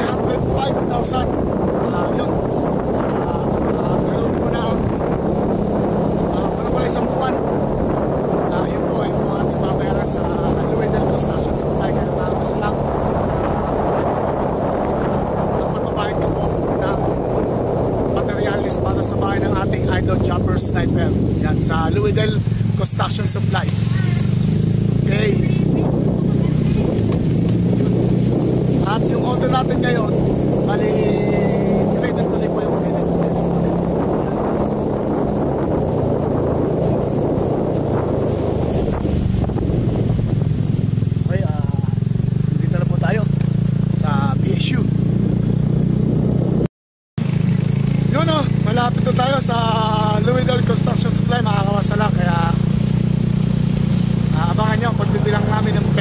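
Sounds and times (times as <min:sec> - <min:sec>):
motorcycle engine running: 0:00.0 - 0:56.0
wind buffeting microphone: 0:00.0 - 0:56.0.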